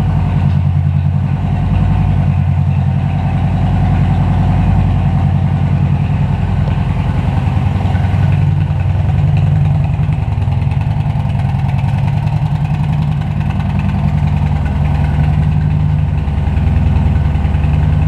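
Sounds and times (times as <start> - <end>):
motorcycle engine idling: 0.0 - 18.0.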